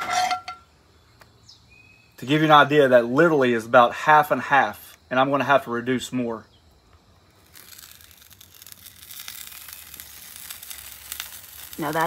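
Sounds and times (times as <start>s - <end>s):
sizzling on a hot griddle: 6.7s - 12.0s.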